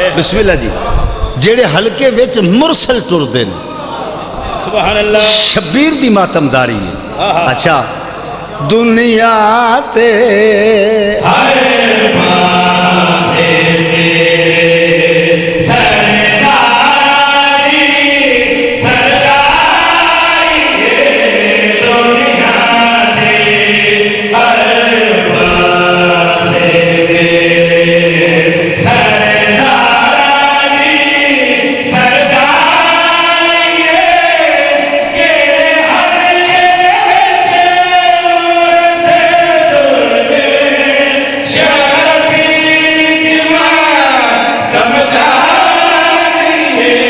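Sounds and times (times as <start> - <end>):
men singing through microphones: 7.9 - 47.0.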